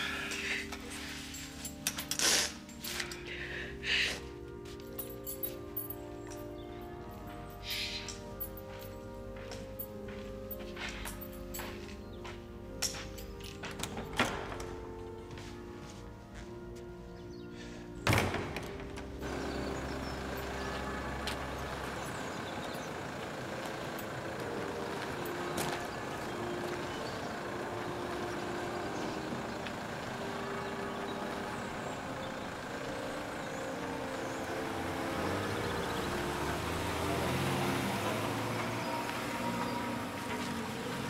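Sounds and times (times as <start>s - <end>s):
low engine rumble: 0.0s - 41.0s
road traffic noise: 0.0s - 41.0s
soft slow background music: 0.0s - 41.0s.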